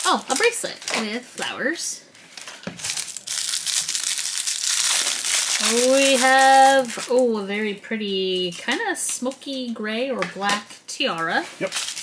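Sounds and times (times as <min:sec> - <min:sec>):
paper wrapper crinkling: 0:00.0 - 0:01.5, 0:02.1 - 0:07.5, 0:10.6 - 0:12.0.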